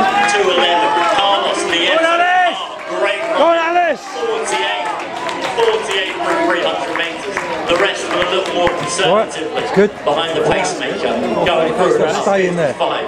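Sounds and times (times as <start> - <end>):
loud drawn-out shouts: 0.0 - 9.7
people shouting and calling: 0.0 - 12.3.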